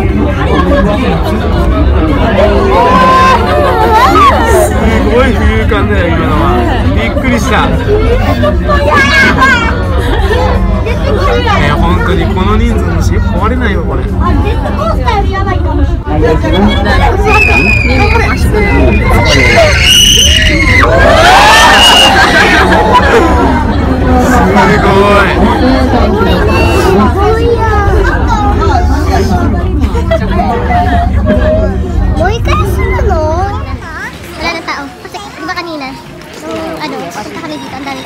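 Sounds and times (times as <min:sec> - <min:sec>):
people chattering: 0:00.0 - 0:38.0
voices talking and calling out: 0:00.0 - 0:38.0
steady low rumble: 0:20.4 - 0:35.2.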